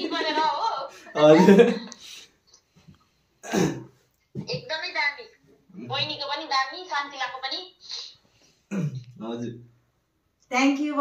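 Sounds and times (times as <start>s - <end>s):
person speaking: 0.0s - 2.2s
man clearing his throat: 3.4s - 4.0s, 8.7s - 9.1s.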